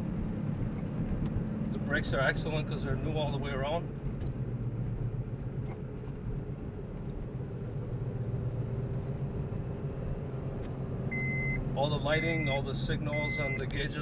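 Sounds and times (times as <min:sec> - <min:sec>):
car engine and road noise: 0:00.0 - 0:14.0
short high-pitched beep: 0:11.1 - 0:11.6.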